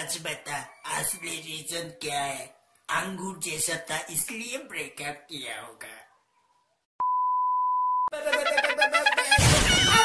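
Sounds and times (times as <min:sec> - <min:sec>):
censor bleep: 0:07.0 - 0:08.1.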